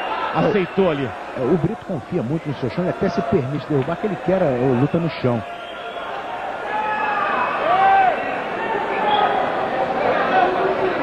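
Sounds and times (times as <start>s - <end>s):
crowd voices: 0.0s - 11.0s
people shouting: 5.8s - 11.0s.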